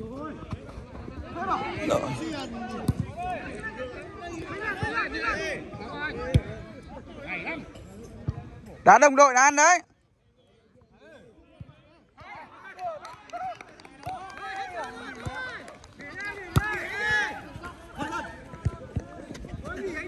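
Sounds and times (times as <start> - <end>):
footballers shouting: 1.2 - 7.7, 11.1 - 20.0.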